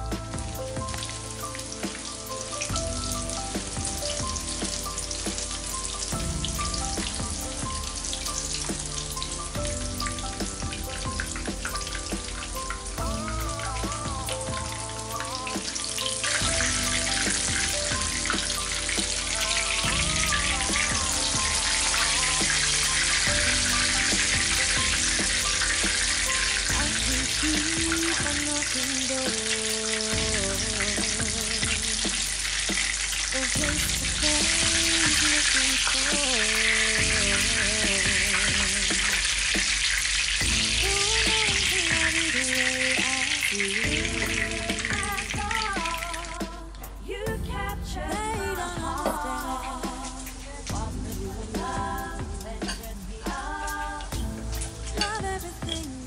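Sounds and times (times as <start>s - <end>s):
background music: 0.0s - 56.0s
cutlets sizzling in hot oil: 3.5s - 45.6s.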